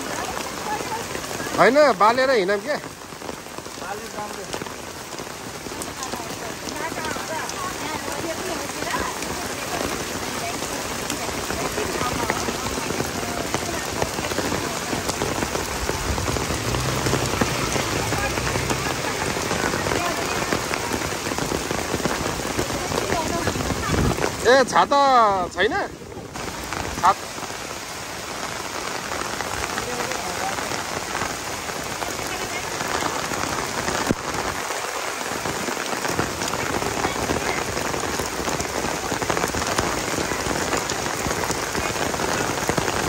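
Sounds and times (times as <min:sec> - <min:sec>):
heavy rain on wet paving: 0:00.0 - 0:43.0.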